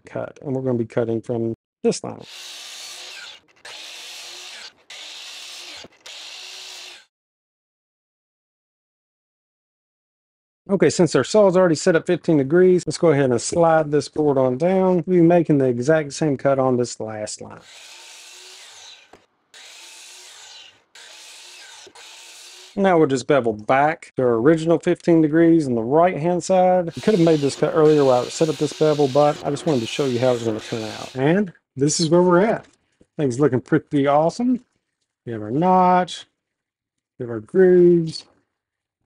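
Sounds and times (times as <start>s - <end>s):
miter saw cutting wood: 2.2s - 7.1s, 17.6s - 22.8s, 26.9s - 31.3s.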